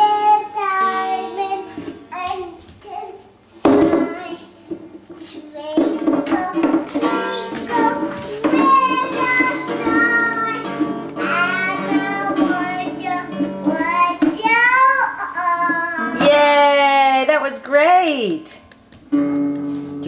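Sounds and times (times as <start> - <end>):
acoustic guitar strumming: 0.0 - 2.6, 3.6 - 4.5, 5.6 - 16.4, 19.1 - 20.0
toddler singing: 0.0 - 16.3.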